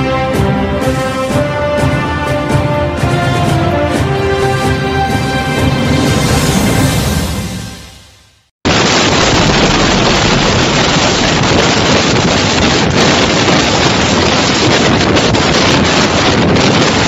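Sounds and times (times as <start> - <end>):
wind driving heavy rain: 0.0 - 7.3, 8.6 - 17.0
wind buffeting microphone: 8.7 - 17.0.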